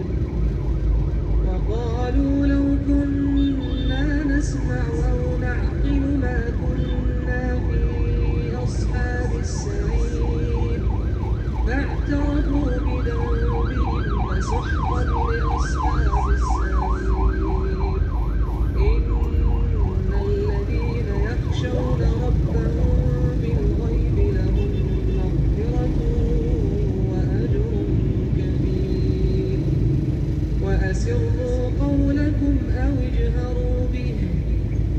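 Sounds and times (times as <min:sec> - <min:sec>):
emergency siren yelping: 0:00.0 - 0:05.9, 0:06.7 - 0:23.2
traffic rumble inside a car: 0:00.0 - 0:34.9.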